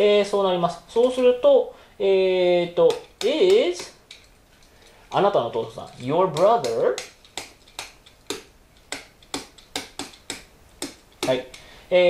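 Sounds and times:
marker pen writing on whiteboard: 0:05.8 - 0:11.6.

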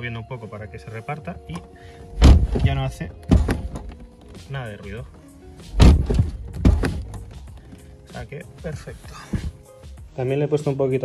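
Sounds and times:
background music: 0:00.0 - 0:11.0
car door knocking: 0:02.2 - 0:04.5, 0:05.1 - 0:07.8.

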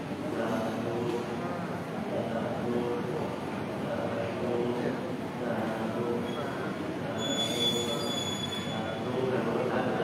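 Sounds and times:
murmur of voices: 0:00.0 - 0:10.0
thin high-pitched squeal: 0:07.2 - 0:08.8.

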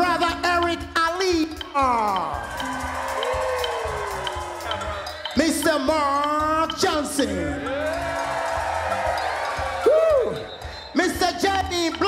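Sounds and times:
live band music: 0:00.0 - 0:12.0
faint crowd cheering: 0:02.2 - 0:05.4, 0:07.5 - 0:11.2
loud swooping whoop: 0:07.9 - 0:10.5.

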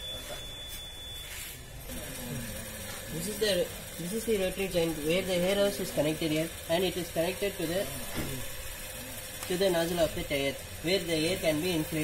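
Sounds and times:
high-pitched electronic buzzer: 0:00.0 - 0:08.9.

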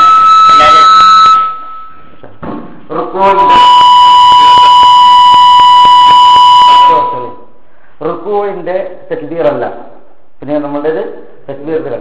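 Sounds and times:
steady whistling tone: 0:00.0 - 0:02.2, 0:03.2 - 0:07.5
man talking: 0:02.9 - 0:03.6, 0:06.8 - 0:07.4, 0:08.0 - 0:12.0.

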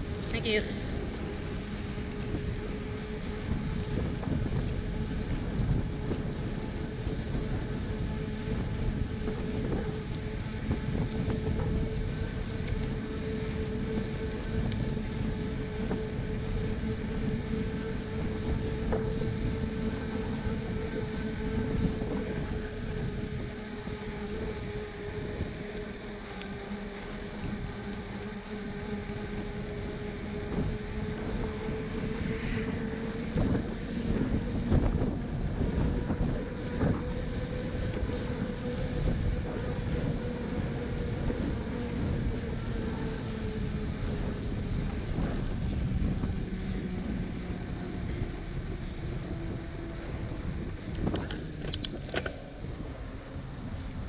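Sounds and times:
steady hum: 0:00.0 - 0:54.0
wind rushing over microphone: 0:00.0 - 0:54.0.

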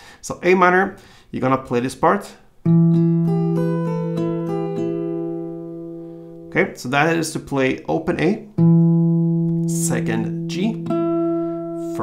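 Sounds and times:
fingerpicked acoustic guitar: 0:02.6 - 0:06.6, 0:08.5 - 0:12.0.

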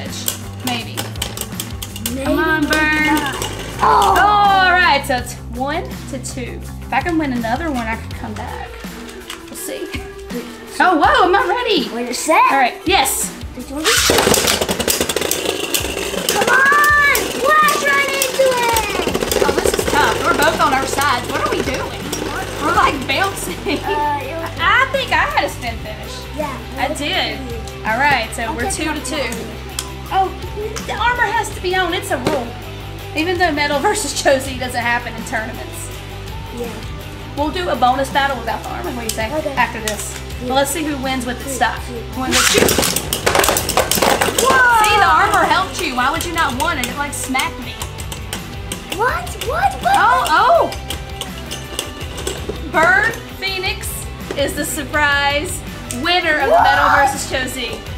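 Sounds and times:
spinning tops clashing: 0:00.0 - 0:04.6, 0:13.8 - 0:24.0, 0:42.3 - 0:54.6
ripcord launch: 0:13.8 - 0:15.4, 0:42.3 - 0:44.4.

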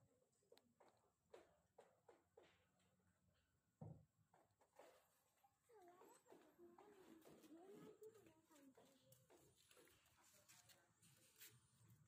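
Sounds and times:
faint distant voices: 0:04.7 - 0:12.0.

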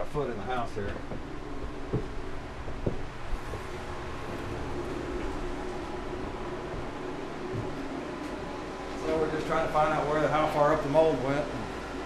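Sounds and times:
low mechanical hum with hiss: 0:00.0 - 0:12.0
short knocks: 0:01.9 - 0:03.7.

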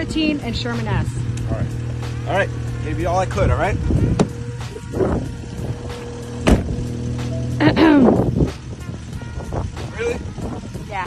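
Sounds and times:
car door slamming: 0:03.9 - 0:05.3, 0:06.0 - 0:07.0.

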